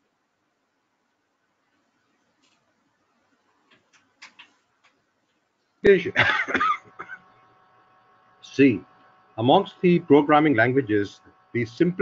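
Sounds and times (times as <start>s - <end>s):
person clearing throat: 6.1s - 7.2s.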